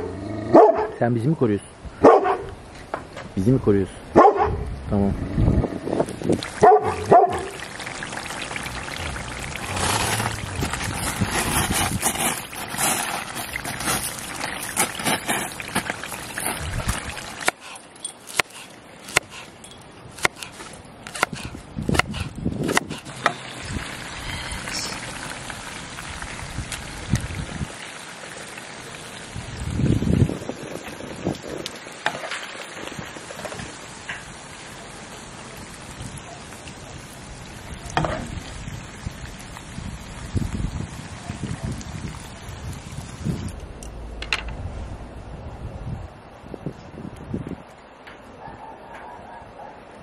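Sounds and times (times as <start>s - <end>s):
dog barking: 0.0s - 1.0s, 2.0s - 2.5s, 4.2s - 4.6s, 6.6s - 7.6s, 48.4s - 49.9s.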